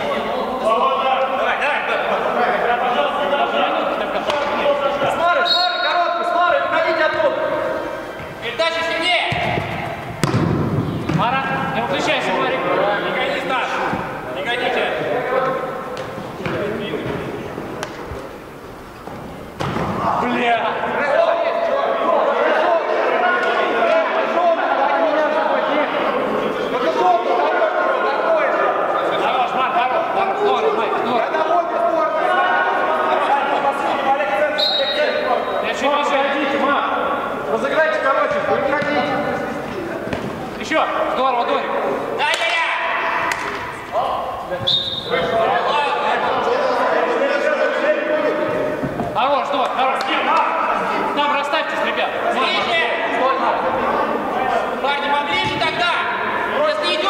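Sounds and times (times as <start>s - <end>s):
football being kicked: 9.3s - 11.3s
players shouting: 19.8s - 57.0s.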